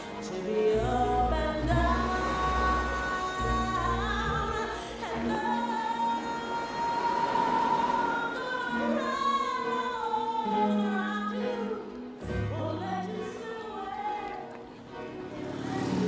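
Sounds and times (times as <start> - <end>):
backing music: 0.0 - 16.0.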